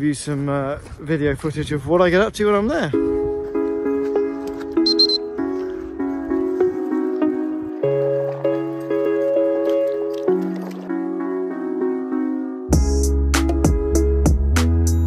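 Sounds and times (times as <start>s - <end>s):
low bass line: 12.7s - 15.0s.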